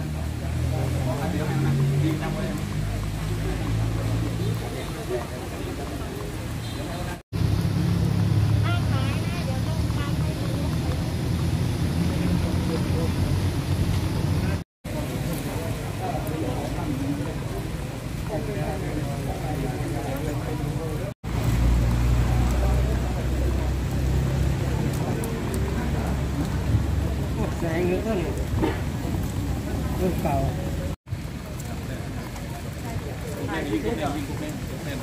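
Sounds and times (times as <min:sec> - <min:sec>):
rain hiss: 0:00.0 - 0:35.0
road traffic rumble: 0:00.0 - 0:35.0.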